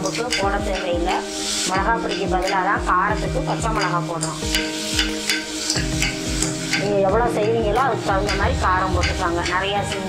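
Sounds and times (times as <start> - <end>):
frying hiss: 0.0 - 10.0
ladle scraping a pot: 4.2 - 6.9.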